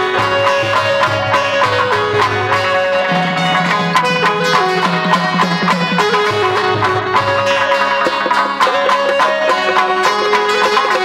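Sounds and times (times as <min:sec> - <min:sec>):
light percussion: 0:00.0 - 0:11.0
plucked lute melody: 0:00.0 - 0:11.0.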